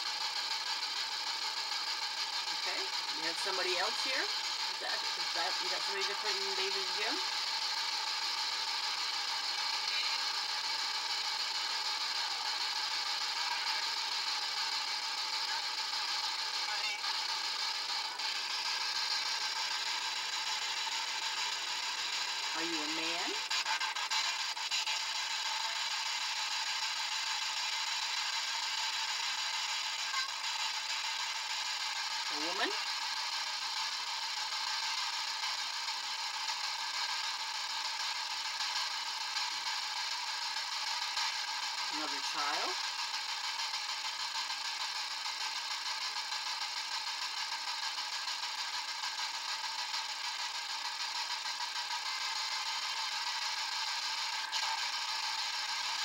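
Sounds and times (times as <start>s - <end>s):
faint steady tones: 0.0s - 56.0s.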